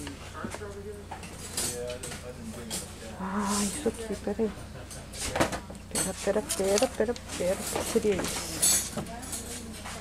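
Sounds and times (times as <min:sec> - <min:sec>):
faint voices talking: 0:00.0 - 0:10.0.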